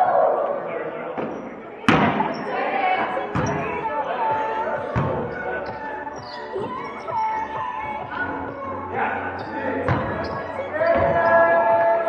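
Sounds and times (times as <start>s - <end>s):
volleyball smacks echoing: 1.2s - 2.4s.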